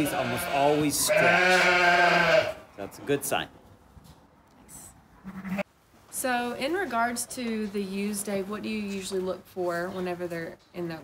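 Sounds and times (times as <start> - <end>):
sheep bleat: 0.0 - 2.6, 5.2 - 5.7.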